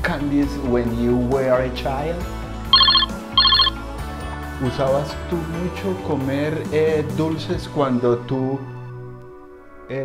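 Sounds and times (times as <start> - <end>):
electronic telephone ringing: 2.8 - 3.7
quiet background music: 4.6 - 10.0.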